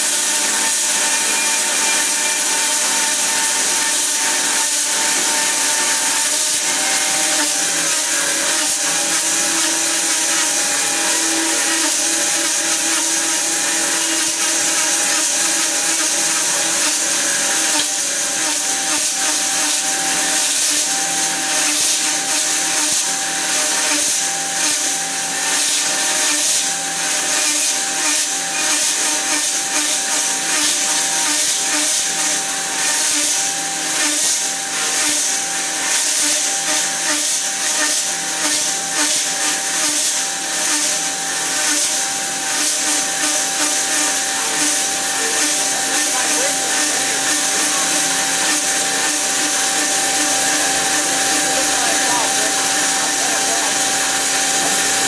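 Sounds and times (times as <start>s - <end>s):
band saw cutting metal: 0.0s - 55.0s.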